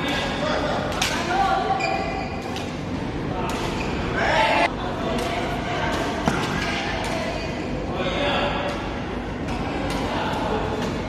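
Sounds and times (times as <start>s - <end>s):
hubbub of voices: 0.0s - 11.0s.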